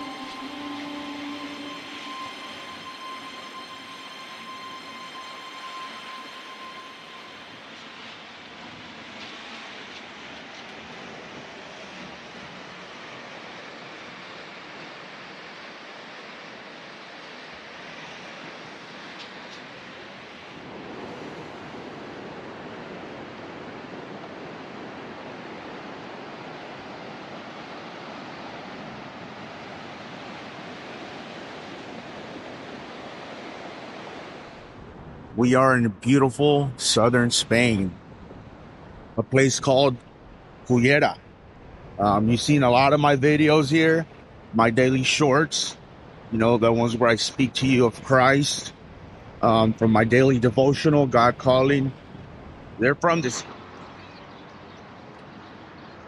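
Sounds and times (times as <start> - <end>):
background music: 0.0 - 8.2
sea surf breaking: 0.0 - 53.8.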